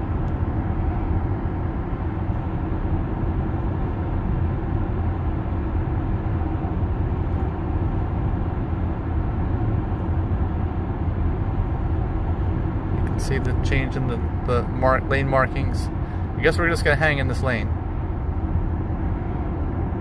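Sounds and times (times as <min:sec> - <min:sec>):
road and tyre rumble: 0:00.0 - 0:20.0.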